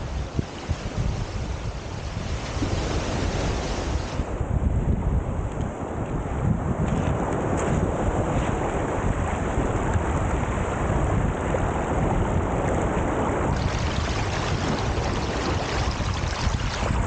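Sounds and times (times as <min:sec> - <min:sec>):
wind buffeting microphone: 0:00.0 - 0:17.0
waves washing onto pebbles: 0:12.8 - 0:17.0.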